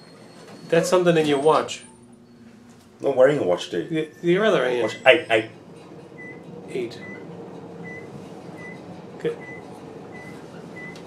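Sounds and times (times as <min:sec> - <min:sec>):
lift car hum: 0:00.0 - 0:11.0.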